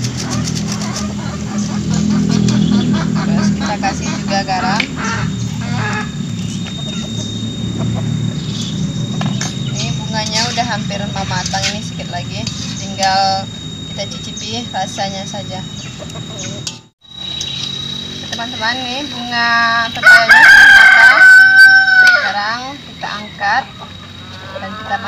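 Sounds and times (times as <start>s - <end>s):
chickens clucking: 0.0s - 13.4s, 15.0s - 16.8s, 22.0s - 25.0s.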